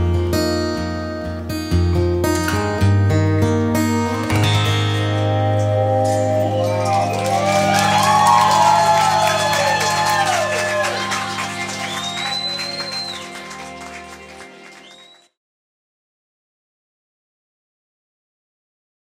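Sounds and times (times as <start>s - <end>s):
acoustic guitar chord ringing: 1.5s - 14.6s
audience clapping and whooping: 6.4s - 15.3s.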